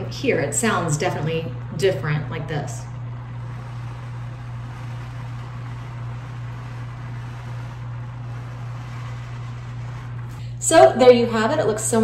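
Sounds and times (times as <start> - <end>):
garment steamer hissing: 2.8 - 10.8.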